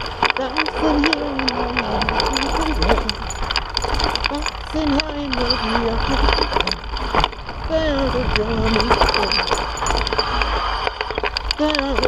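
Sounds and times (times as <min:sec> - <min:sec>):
bike rattling over rocks: 0:00.0 - 0:12.0
wind rumbling on microphone: 0:00.0 - 0:12.0.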